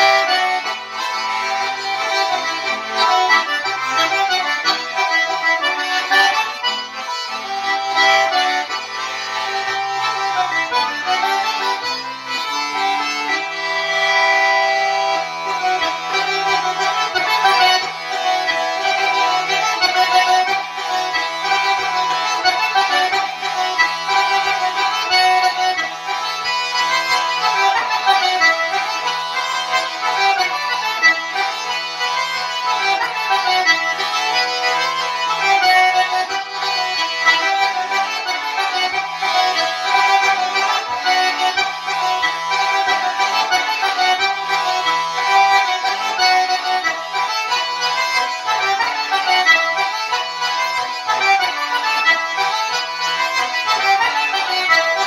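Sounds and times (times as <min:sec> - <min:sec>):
button accordion playing dance tune: 0:00.0 - 0:55.0.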